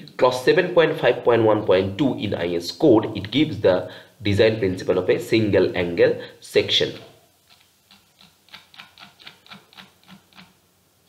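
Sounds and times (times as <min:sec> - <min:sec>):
mouse scroll wheel ticking: 0:07.5 - 0:10.5.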